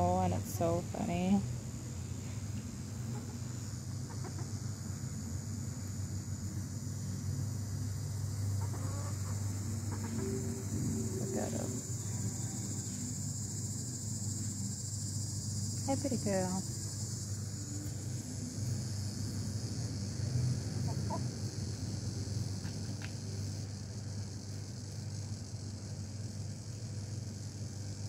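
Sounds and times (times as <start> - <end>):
insects chirring: 0.0 - 28.0
hens clucking: 4.1 - 4.5, 8.6 - 10.4, 20.9 - 21.2.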